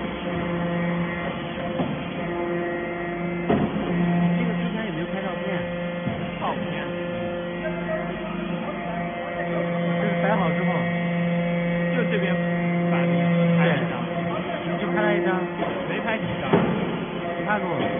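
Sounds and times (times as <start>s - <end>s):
hydraulic press motor hum: 0.0s - 17.9s.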